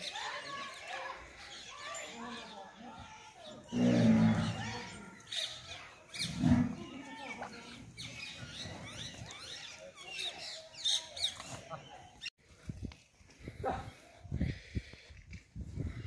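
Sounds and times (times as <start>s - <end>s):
small birds chirping: 0.0s - 12.9s.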